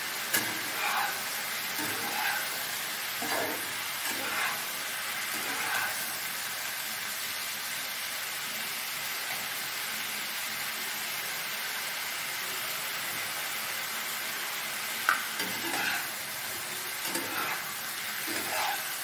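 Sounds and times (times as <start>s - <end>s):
mushrooms sizzling in oil: 0.0s - 19.0s.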